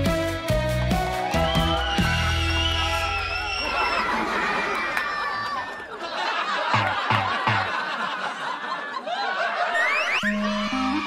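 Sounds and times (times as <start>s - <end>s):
rising whistle sound effect: 1.2s - 4.1s, 9.8s - 10.7s
people laughing: 2.3s - 11.0s.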